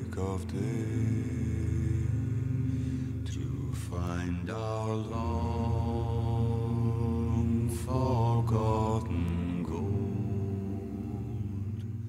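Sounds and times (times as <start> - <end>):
male choir singing: 0.0 - 12.0.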